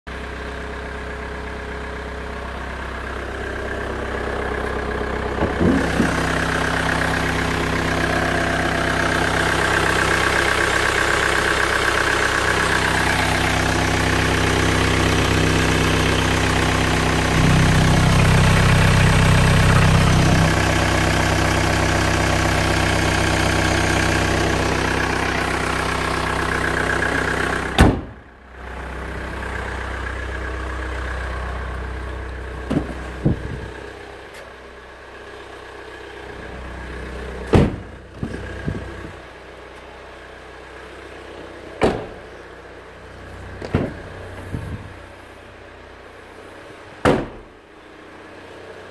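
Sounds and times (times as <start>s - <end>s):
car engine idling: 0.1s - 48.9s.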